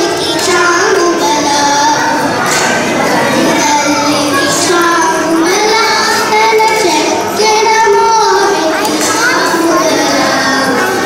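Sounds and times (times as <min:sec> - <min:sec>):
girls singing together: 0:00.0 - 0:11.0.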